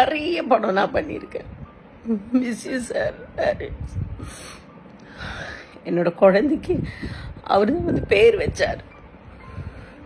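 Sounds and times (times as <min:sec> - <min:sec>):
woman breathing tearfully: 0:04.2 - 0:05.8.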